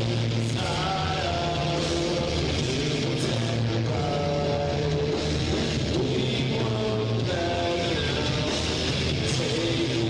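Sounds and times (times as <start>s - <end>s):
rock band with distorted guitars: 0.0s - 10.0s.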